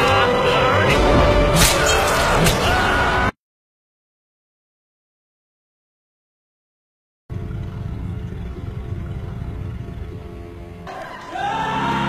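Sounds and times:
low steady rumble: 7.3s - 10.9s.

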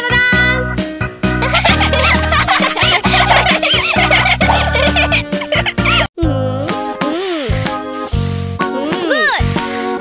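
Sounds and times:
cartoon music with bass line: 0.0s - 10.0s
cartoon characters giggling: 1.4s - 6.1s.

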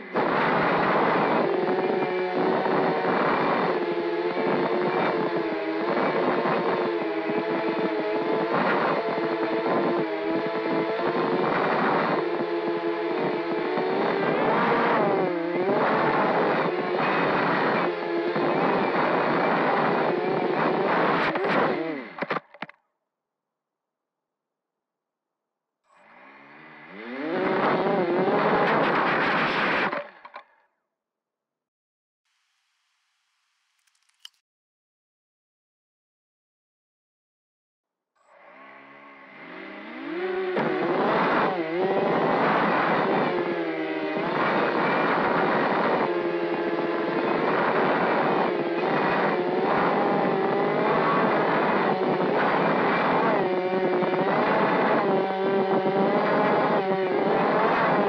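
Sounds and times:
quadcopter motors whining: 25.9s - 28.6s, 38.6s - 52.3s
drone motors whining: 25.9s - 28.7s.

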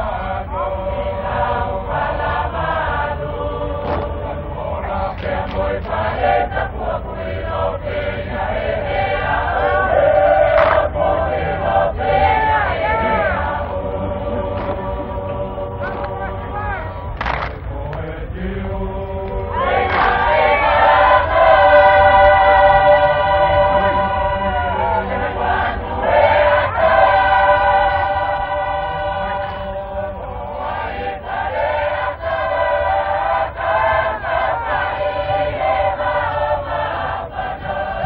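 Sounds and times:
choir singing in parts: 0.0s - 38.0s.

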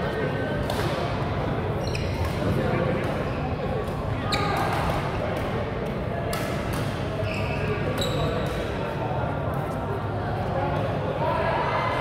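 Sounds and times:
rackets hitting shuttlecock: 6.2s - 7.2s.

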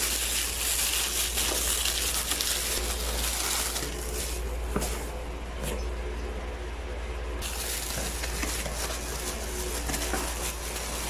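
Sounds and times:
plastic wrapping crinkling: 0.0s - 5.2s, 7.4s - 11.0s.

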